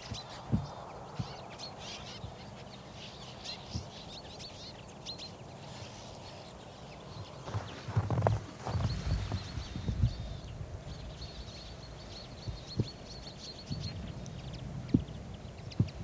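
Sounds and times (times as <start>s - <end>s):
low fluttering thumps: 7.4s - 10.5s.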